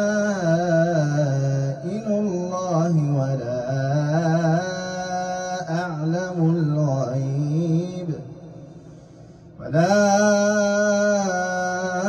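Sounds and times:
man chanting: 0.0 - 8.8, 9.4 - 12.0.

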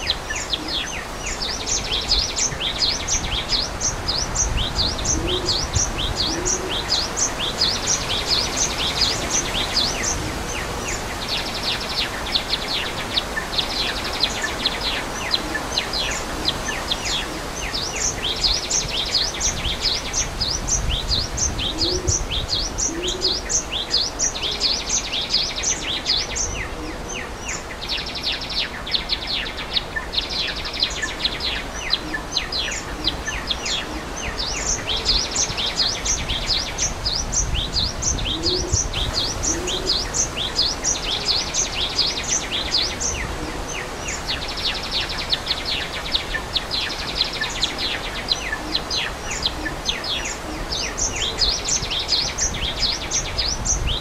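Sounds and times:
small birds chirping: 0.0 - 54.0
waterfall rushing: 0.0 - 54.0
low cooing notes: 21.6 - 22.2.

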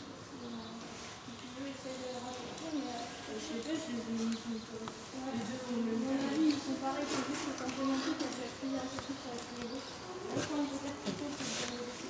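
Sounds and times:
chatter of young voices: 0.1 - 12.0.

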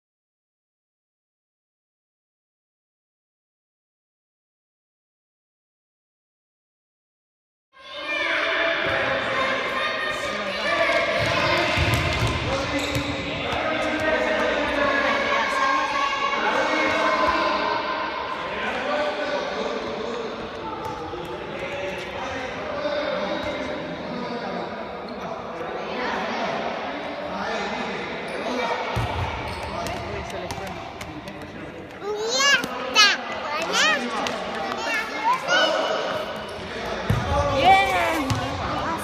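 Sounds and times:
children's voices: 32.0 - 36.1.

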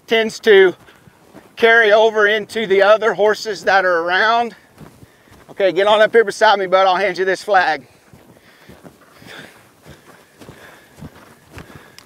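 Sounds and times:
horse hoofbeats on dirt: 0.0 - 12.0
soft rustle: 0.4 - 1.8, 3.5 - 6.2, 7.7 - 12.0.

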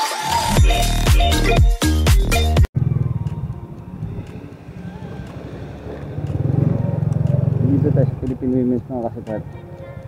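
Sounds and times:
motorcycle engine running: 2.8 - 10.0.

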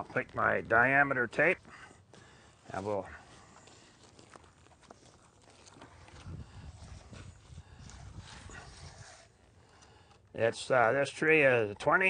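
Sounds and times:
footsteps in undergrowth: 0.1 - 9.6.

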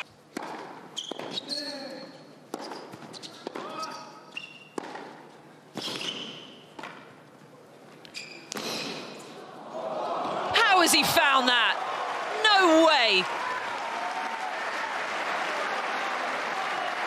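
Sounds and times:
tennis ball bouncing: 0.3 - 1.4, 2.5 - 3.6, 4.7 - 5.3
tennis racquet hitting ball: 0.3 - 1.4, 4.7 - 5.2
shoes squeaking on court: 0.9 - 5.2, 5.8 - 7.1, 8.0 - 9.2.

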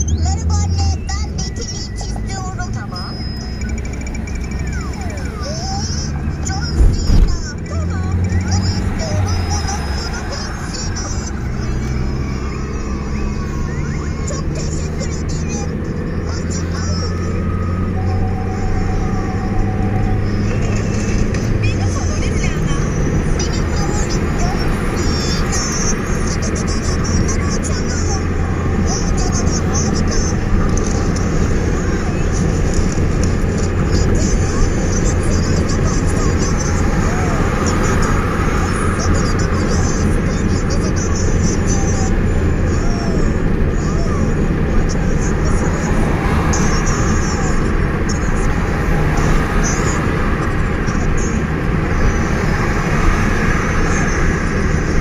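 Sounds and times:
car road noise: 0.0 - 55.0
low engine drone: 0.0 - 55.0.

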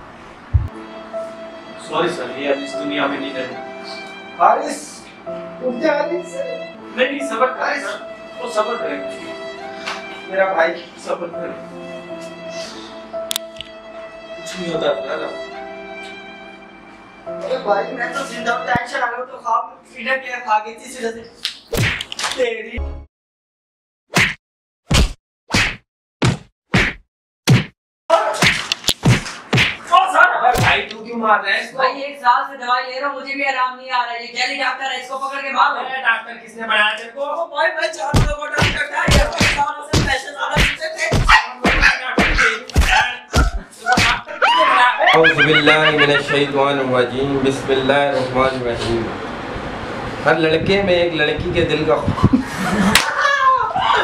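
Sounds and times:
hand slap crack: 21.4 - 22.4, 24.2 - 25.8, 28.4 - 29.9, 30.5 - 31.0, 38.2 - 44.3, 52.9 - 53.1
whacking punch hits: 21.7 - 22.1, 24.1 - 27.8, 28.4 - 29.8, 30.6 - 30.9, 38.2 - 44.2
voices: 38.1 - 49.2.

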